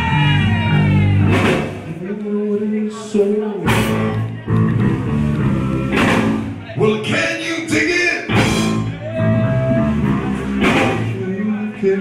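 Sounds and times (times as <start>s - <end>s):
live rock band playing: 0.0s - 2.0s, 3.6s - 12.0s
sharp drum or cymbal hits: 1.3s - 1.9s, 5.9s - 6.5s, 10.6s - 11.2s.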